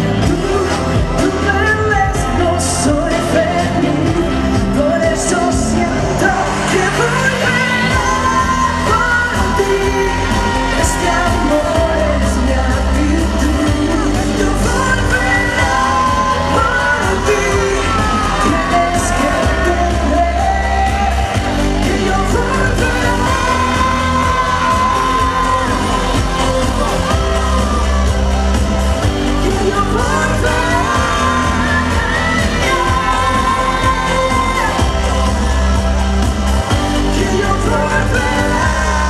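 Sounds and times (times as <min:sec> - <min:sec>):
woman singing into a microphone: 0:00.0 - 0:28.4, 0:29.0 - 0:36.1, 0:36.9 - 0:39.0
amplified pop music with heavy bass: 0:00.0 - 0:39.0.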